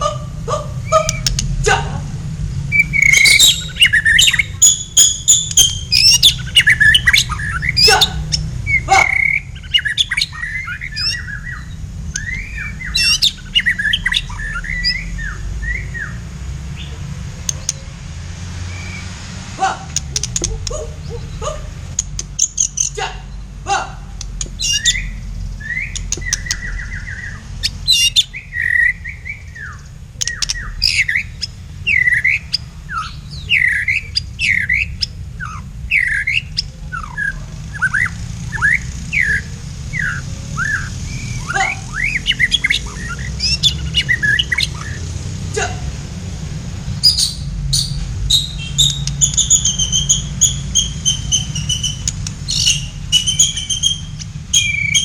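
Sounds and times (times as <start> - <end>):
songbirds whistling and chirping: 0.0 - 1.6, 2.5 - 17.9, 18.6 - 19.2, 19.9 - 23.6, 24.2 - 45.3, 47.0 - 55.0.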